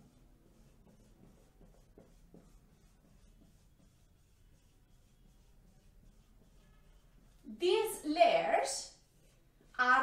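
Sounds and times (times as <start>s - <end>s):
marker squeaking on whiteboard: 0.0s - 8.0s.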